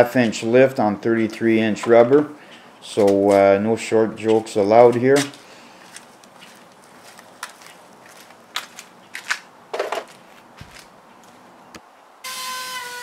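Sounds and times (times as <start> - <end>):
electric router whine: 12.2 - 13.0.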